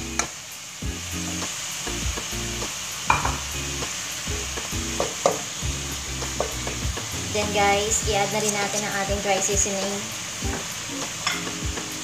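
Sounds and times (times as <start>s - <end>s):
frying sizzle: 0.0s - 12.0s
wooden spatula scraping wok: 6.2s - 10.0s.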